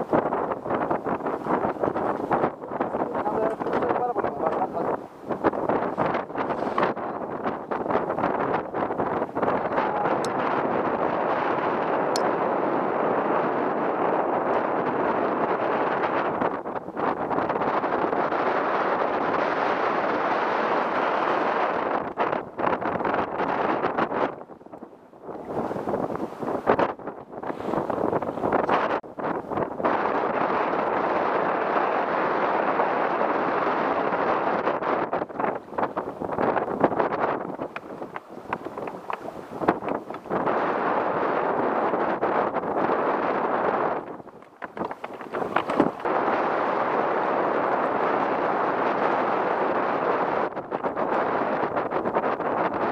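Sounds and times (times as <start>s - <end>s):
wind buffeting microphone: 0.0s - 52.9s.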